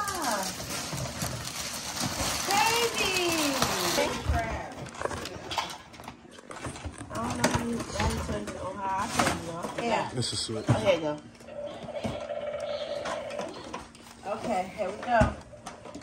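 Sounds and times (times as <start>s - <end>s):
cardboard packaging rustling: 0.0s - 5.3s.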